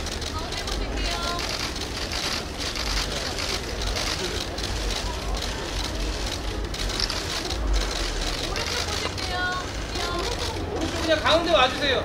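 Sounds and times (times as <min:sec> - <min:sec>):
camera shutters clattering: 0:00.0 - 0:11.8
crowd chatter: 0:00.0 - 0:12.0.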